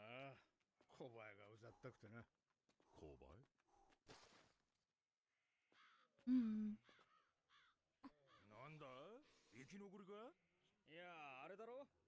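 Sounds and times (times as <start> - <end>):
crow cawing: 5.7 - 6.2, 6.8 - 8.6.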